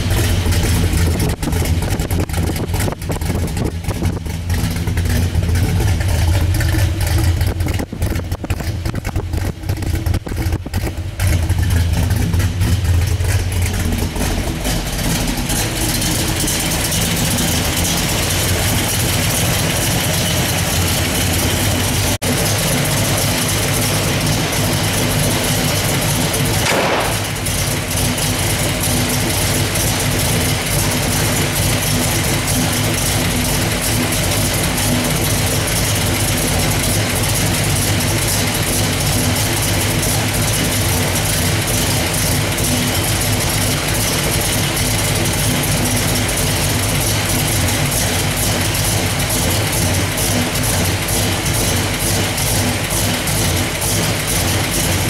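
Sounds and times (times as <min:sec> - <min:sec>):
car engine idling through exhaust: 0:00.0 - 0:55.0.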